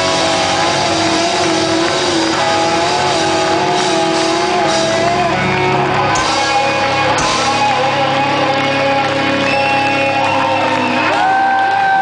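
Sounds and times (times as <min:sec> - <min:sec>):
distorted electric guitar notes: 0:00.0 - 0:12.0
live rock band playing loud: 0:00.0 - 0:12.0.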